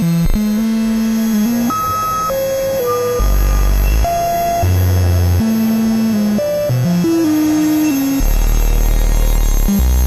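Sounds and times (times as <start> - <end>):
dense layered drone: 0.0 - 10.0.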